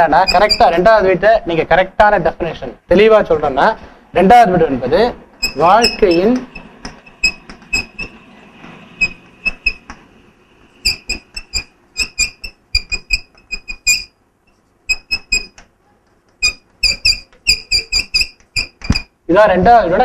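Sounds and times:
chalk squeaking on blackboard: 0.0 - 0.8, 5.4 - 8.2, 9.0 - 10.0, 10.8 - 15.7, 16.3 - 19.2.

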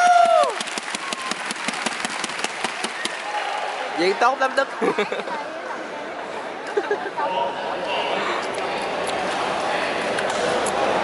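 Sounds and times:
spectators clapping: 0.0 - 3.9.

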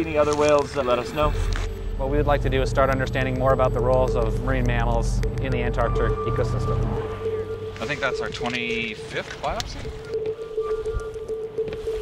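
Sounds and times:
faint higher notes: 0.0 - 12.0
sustained music tone: 0.0 - 12.0.

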